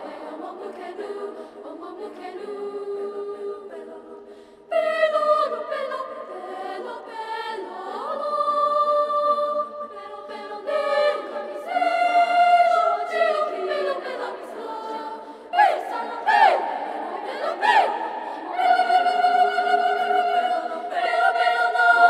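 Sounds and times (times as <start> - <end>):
children's choir singing: 0.0 - 22.0.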